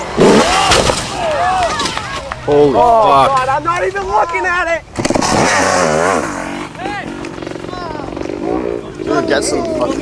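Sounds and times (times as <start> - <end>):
dirt bike engine revving: 0.0 - 0.7, 4.9 - 10.0
people's excited voices: 0.2 - 4.9.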